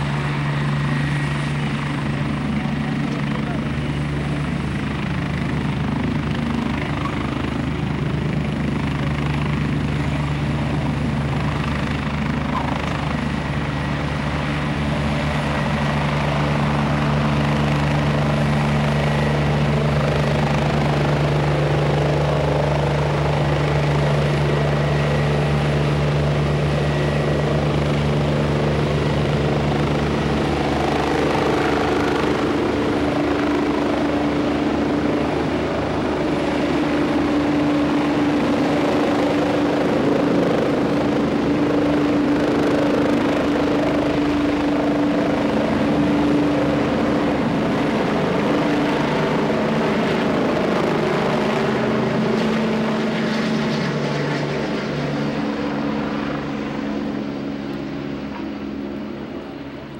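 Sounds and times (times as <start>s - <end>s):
helicopter turbine and rotor: 0.0s - 59.9s.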